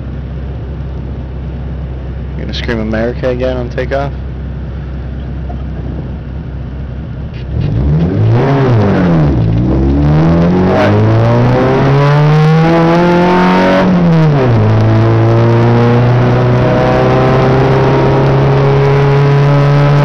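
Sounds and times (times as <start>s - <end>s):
race car engine accelerating: 7.2s - 20.0s.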